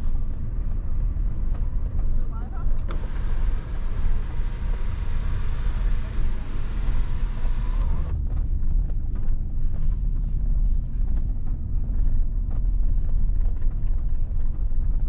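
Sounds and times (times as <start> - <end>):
engine and road rumble: 0.0 - 15.0.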